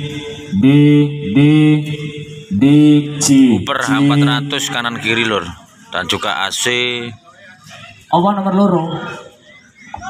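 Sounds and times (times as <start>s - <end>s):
man calling into pa microphone: 0.0s - 7.4s.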